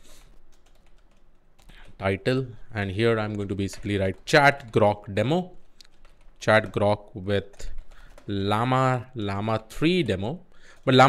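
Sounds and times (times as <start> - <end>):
typing on computer keyboard: 0.2 - 2.0, 3.2 - 5.0, 5.7 - 6.8, 7.4 - 8.7.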